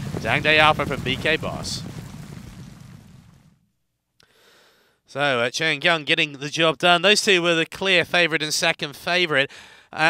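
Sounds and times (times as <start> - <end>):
racecourse ambience: 0.0 - 2.2.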